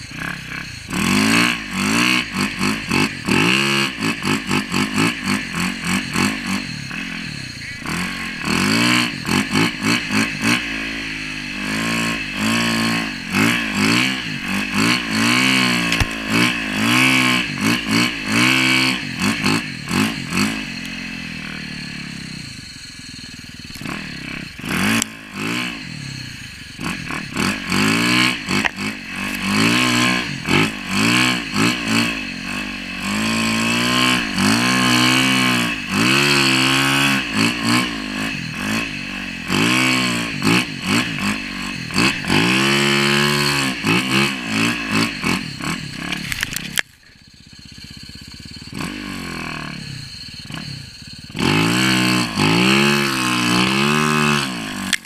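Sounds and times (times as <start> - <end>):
snow bike engine revving: 0.0 - 55.0.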